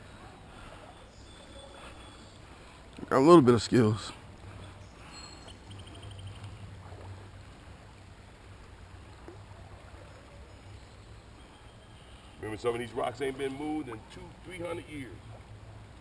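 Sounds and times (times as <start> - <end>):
creek running over rocks: 1.7 - 11.4.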